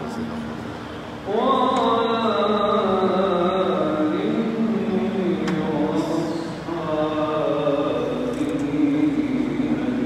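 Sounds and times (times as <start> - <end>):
man chanting into a microphone: 1.3 - 10.0.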